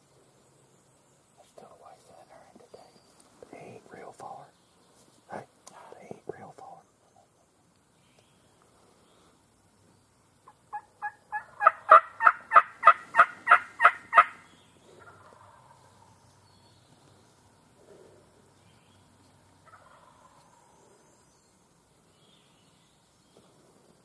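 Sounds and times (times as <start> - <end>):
distant turkey gobbling: 10.4 - 16.2, 19.6 - 20.9
loud turkey calls: 10.4 - 16.2, 19.6 - 21.0.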